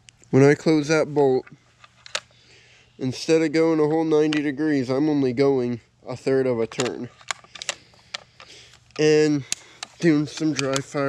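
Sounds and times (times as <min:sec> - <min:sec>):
rifle bolt metal clicks: 0:06.7 - 0:11.0.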